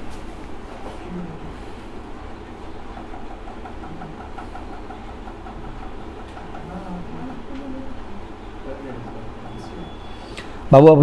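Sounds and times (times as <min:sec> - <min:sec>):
fast pulsing tone: 0:02.8 - 0:10.4.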